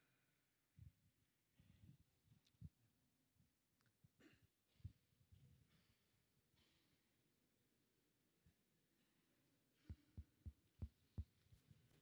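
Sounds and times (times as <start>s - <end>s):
microphone tapping thumps: 9.9s - 12.0s.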